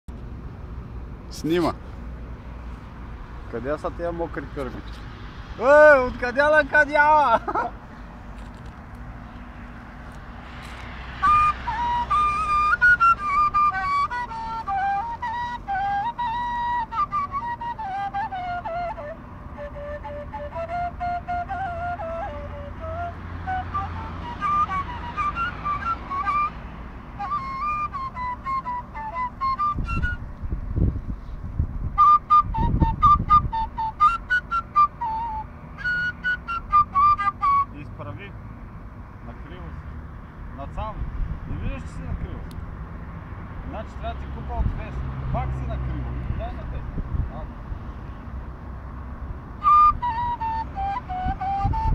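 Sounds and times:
end-blown flute melody: 0:10.4 - 0:30.4, 0:31.9 - 0:38.0, 0:49.6 - 0:51.9.

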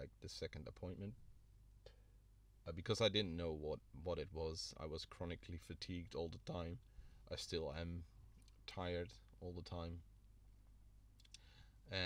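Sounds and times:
faint breath: 0:01.8 - 0:02.2, 0:06.9 - 0:07.3, 0:11.3 - 0:11.9
person speaking: 0:02.7 - 0:10.1
faint clicks: 0:11.2 - 0:11.5.

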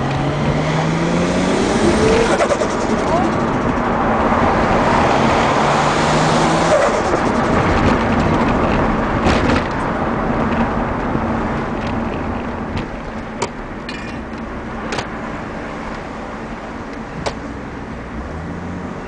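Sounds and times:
car engine from inside cabin: 0:00.0 - 0:09.2.

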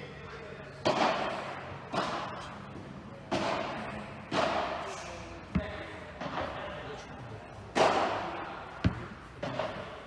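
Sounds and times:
ball hitting padel rackets: 0:00.8 - 0:02.6, 0:03.2 - 0:06.8, 0:07.7 - 0:10.0.

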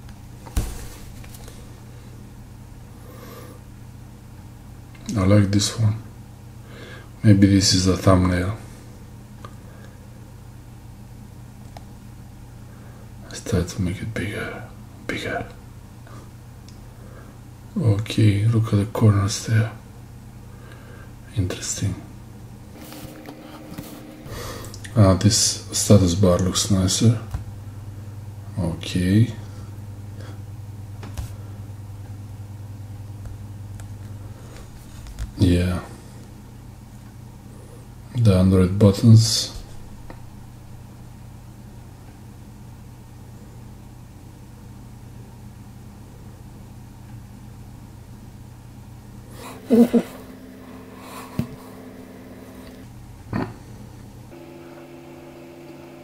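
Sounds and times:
low background hum: 0:00.0 - 0:56.0.

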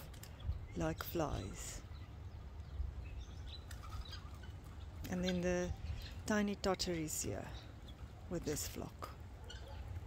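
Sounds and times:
faint bird chirps: 0:00.2 - 0:06.4.

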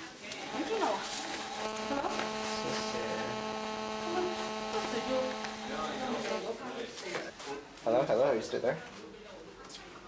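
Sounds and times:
faint voices: 0:00.0 - 0:07.8
electrical buzz: 0:00.3 - 0:06.6.

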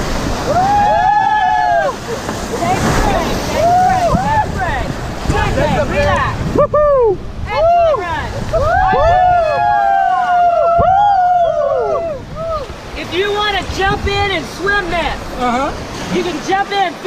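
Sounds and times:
rush of whitewater rapids: 0:00.0 - 0:17.0
people shouting and whooping: 0:00.4 - 0:02.3, 0:03.4 - 0:04.6, 0:06.0 - 0:12.8.

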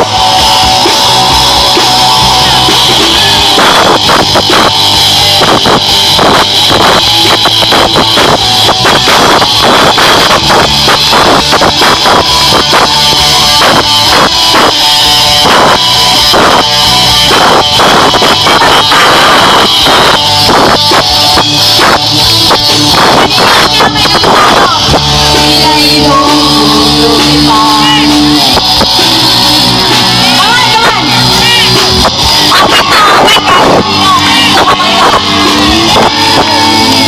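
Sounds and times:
drum kit: 0:00.0 - 0:37.0
electric bass: 0:00.0 - 0:37.0
electric guitar: 0:00.0 - 0:37.0.

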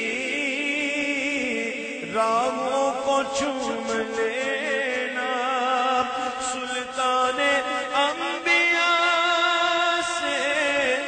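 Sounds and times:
man singing unaccompanied hymn: 0:00.0 - 0:11.0.

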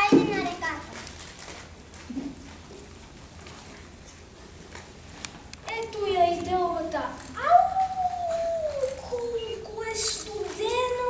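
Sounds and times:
child howling like a wolf: 0:07.4 - 0:09.1.

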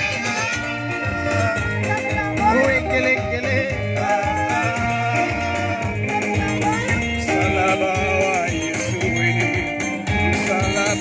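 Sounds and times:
electronic keyboard playing: 0:00.0 - 0:11.0
person singing: 0:00.0 - 0:11.0.

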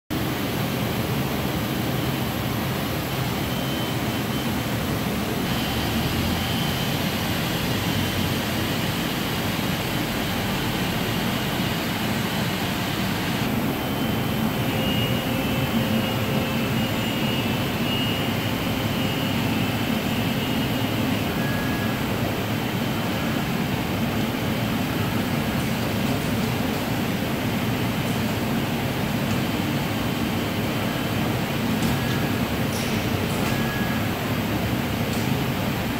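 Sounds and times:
printer fans whirring: 0:00.1 - 0:35.9
faint high whines: 0:02.0 - 0:25.3.

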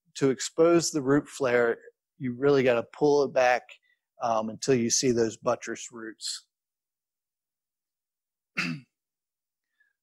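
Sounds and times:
man clearing throat: 0:08.5 - 0:09.0.

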